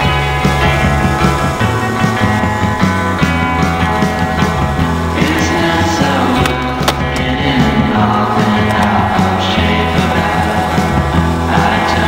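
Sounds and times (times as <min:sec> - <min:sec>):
rock music with guitar: 0:00.0 - 0:12.0
sharp crack: 0:05.2 - 0:07.4.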